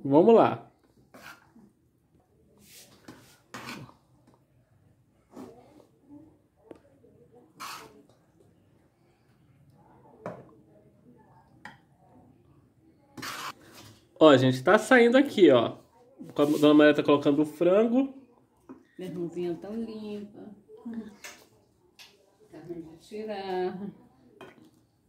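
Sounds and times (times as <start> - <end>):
utensil scraping pot: 1.1 - 1.7, 2.9 - 4.0, 7.6 - 8.2, 13.2 - 13.9.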